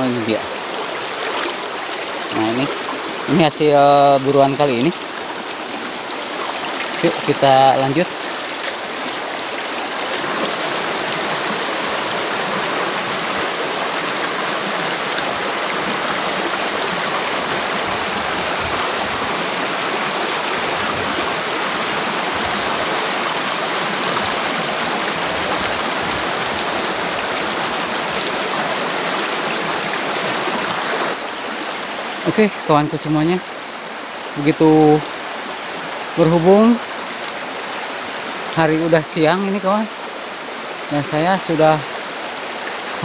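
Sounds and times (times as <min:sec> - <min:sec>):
river rushing over stones: 0:00.0 - 0:43.0.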